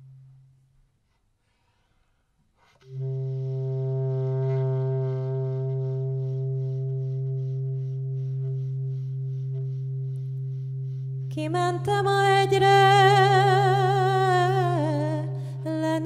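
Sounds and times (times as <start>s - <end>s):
bass clarinet low drone: 0.0s - 0.6s, 2.8s - 15.8s.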